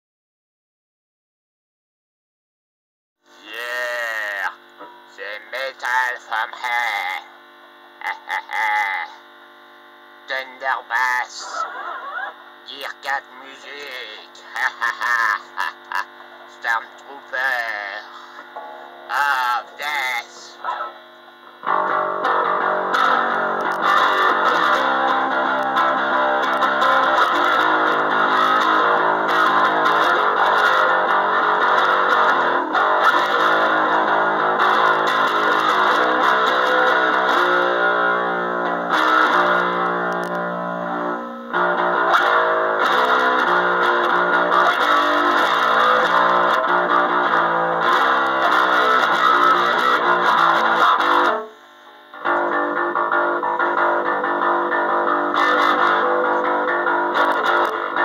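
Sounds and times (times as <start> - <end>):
electric bass guitar notes with reverb: 21.6 - 51.5, 52.1 - 58.0.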